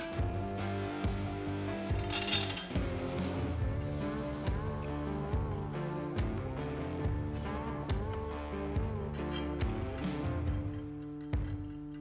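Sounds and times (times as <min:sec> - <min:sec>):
guitar music with steady beat: 0:00.0 - 0:10.7.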